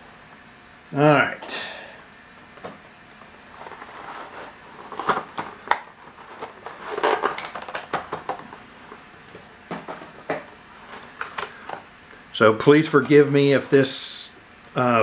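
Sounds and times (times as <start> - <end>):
box and packaging handled: 3.4 - 11.8
packaging rustling: 3.5 - 11.9.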